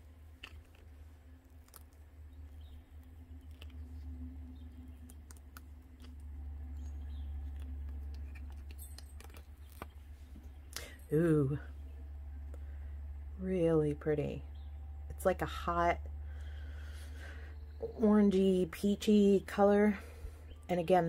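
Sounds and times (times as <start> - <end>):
silicone mold peeling crackles: 0.0 - 10.8
steady low hum: 0.0 - 21.0.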